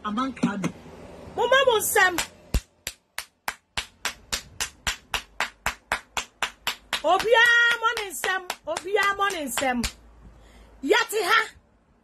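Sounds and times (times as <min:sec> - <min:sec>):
hands clapping in rhythm: 0:02.2 - 0:10.0.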